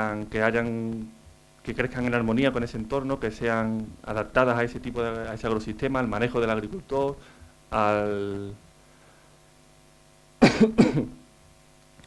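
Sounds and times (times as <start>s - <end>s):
man coughing: 10.4s - 11.2s.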